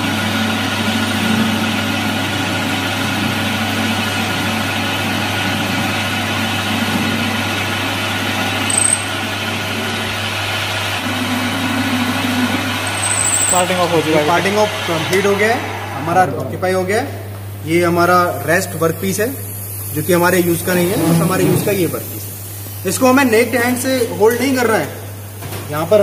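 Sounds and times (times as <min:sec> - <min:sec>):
lathe humming: 0:00.0 - 0:16.4
tool cutting rotating metal bar: 0:08.5 - 0:10.1, 0:11.0 - 0:16.0.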